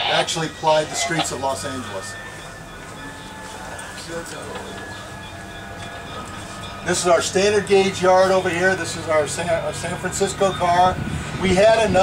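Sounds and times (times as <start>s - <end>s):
man talking: 0.0s - 2.2s, 6.9s - 12.0s
streetcar rumbling on track: 0.0s - 12.0s.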